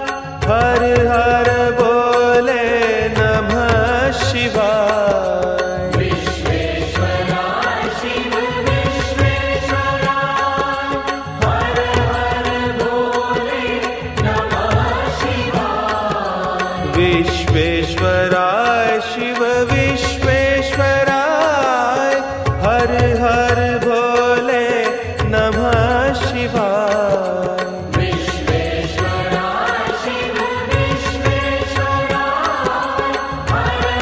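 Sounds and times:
person singing a chant: 0.0s - 34.0s.

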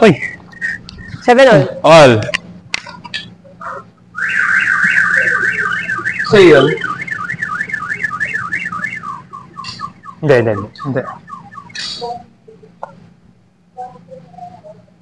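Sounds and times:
electronic alarm siren: 4.1s - 12.2s
people shouting: 4.2s - 8.9s.

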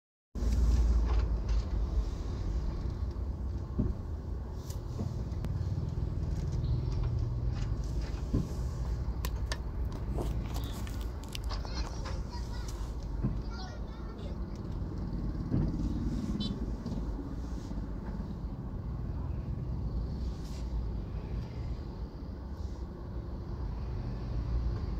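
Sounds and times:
car engine rumble: 0.4s - 24.9s
road noise: 0.4s - 24.9s.

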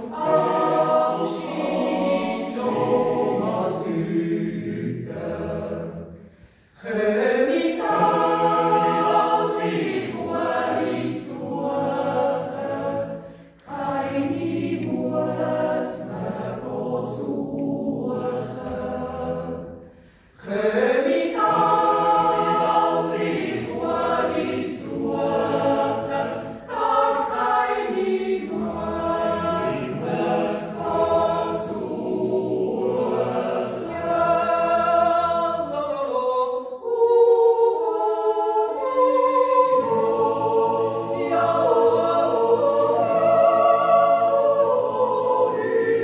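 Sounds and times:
mixed choir yodeling: 0.0s - 6.2s, 6.8s - 46.0s.

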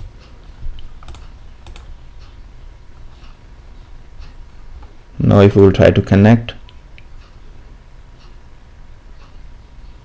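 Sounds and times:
keyboard and mouse clicks: 0.7s - 1.9s.

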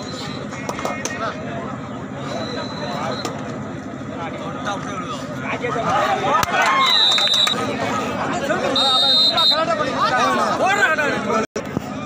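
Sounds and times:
crowd shouting and chattering: 0.0s - 12.0s
short high whistle blasts: 2.3s - 3.4s, 6.8s - 7.6s, 8.7s - 9.7s.

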